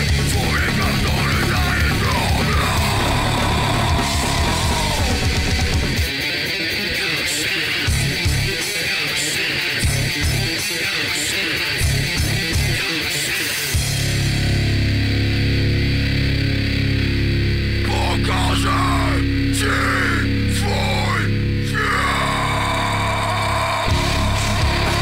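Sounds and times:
heavy bass and drums: 0:00.0 - 0:06.2, 0:07.9 - 0:08.6, 0:11.8 - 0:12.8, 0:13.7 - 0:25.0
distorted electric guitar riff: 0:00.0 - 0:25.0.

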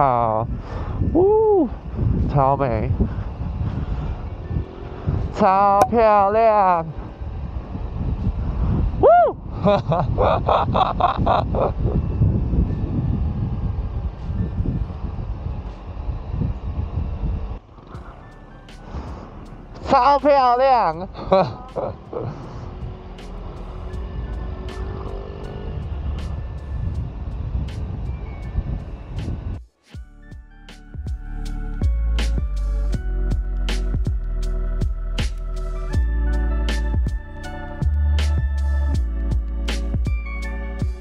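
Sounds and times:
wind buffeting microphone: 0:00.4 - 0:18.4, 0:21.1 - 0:29.6
motorcycle engine rumble: 0:10.8 - 0:20.1, 0:21.0 - 0:29.6
background music with beat: 0:29.2 - 0:41.0.

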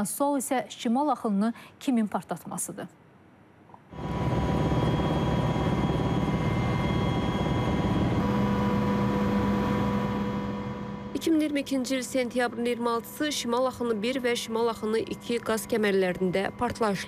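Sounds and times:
aircraft engines droning: 0:03.9 - 0:17.0.

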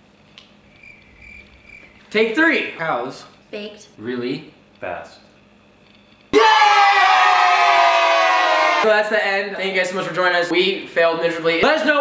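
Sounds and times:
young people cheering: 0:06.4 - 0:08.9.

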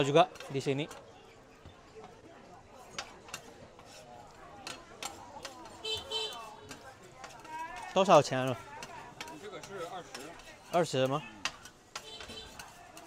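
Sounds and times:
metal spatulas clicking on griddle: 0:00.0 - 0:01.1, 0:02.8 - 0:13.0
faint crowd chatter: 0:00.0 - 0:13.0.

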